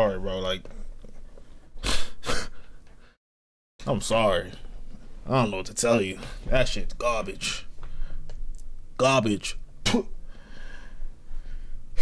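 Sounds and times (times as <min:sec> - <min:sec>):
man breathing sharply: 0:07.8 - 0:08.3, 0:10.2 - 0:12.0.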